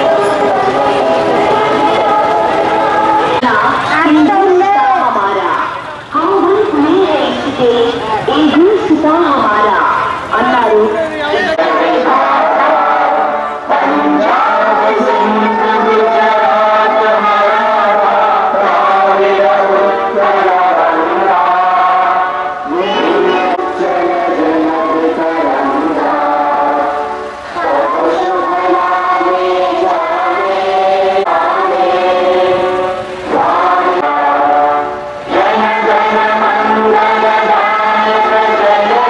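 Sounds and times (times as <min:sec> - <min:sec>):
musical accompaniment: 0:00.0 - 0:03.9, 0:11.7 - 0:39.0
voices chanting in unison: 0:00.0 - 0:39.0.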